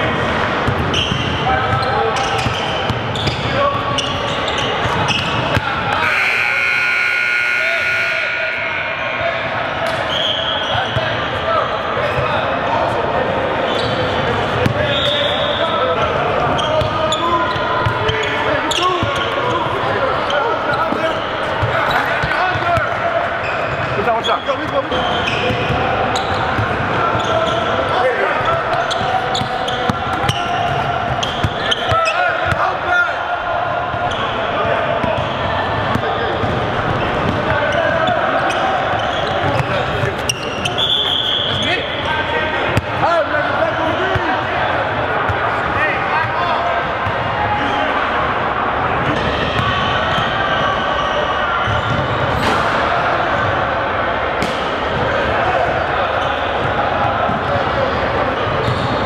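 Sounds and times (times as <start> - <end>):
players shouting and chatting: 0.0 - 59.0.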